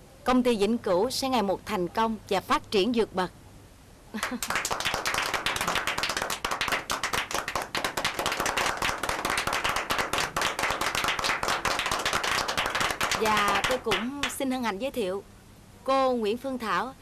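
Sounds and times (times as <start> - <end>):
people applauding: 4.2 - 14.4.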